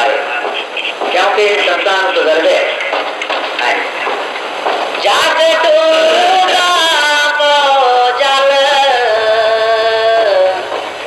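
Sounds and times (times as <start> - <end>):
old recording hiss: 0.0 - 11.0
overlapping indistinct voices: 0.0 - 11.0.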